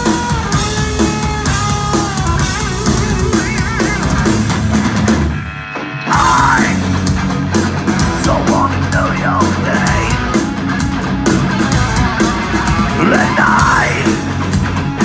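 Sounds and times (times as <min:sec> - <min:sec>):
driving drums: 0:00.0 - 0:15.0
heavy guitars: 0:00.0 - 0:15.0
heavy metal band playing live: 0:00.0 - 0:15.0.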